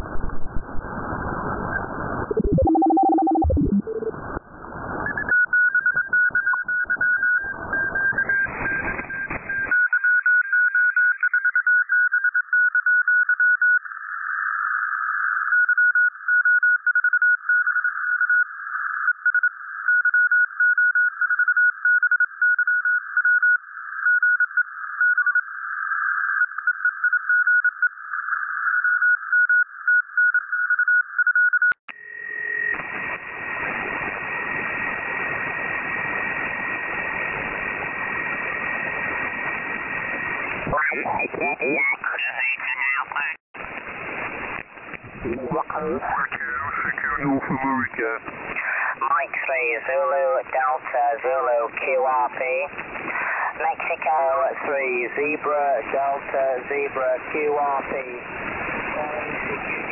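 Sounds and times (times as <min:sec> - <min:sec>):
radio tuning sweep: 0:00.2 - 0:05.3, 0:07.5 - 0:09.7, 0:32.5 - 0:58.2
morse code tone: 0:02.3 - 0:04.1
radio band hiss: 0:07.5 - 0:09.7, 0:32.7 - 0:59.9.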